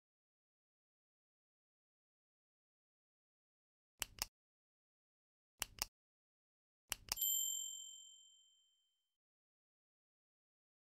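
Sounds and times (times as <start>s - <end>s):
bright bell ding: 7.2s - 8.8s.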